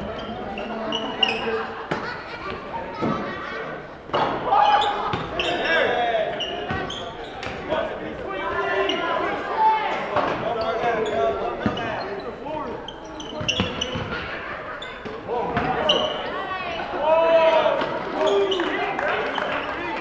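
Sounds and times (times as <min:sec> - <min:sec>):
sneakers squeaking: 0:00.0 - 0:03.3, 0:04.1 - 0:16.9, 0:17.8 - 0:20.0
people calling out: 0:12.9 - 0:20.0.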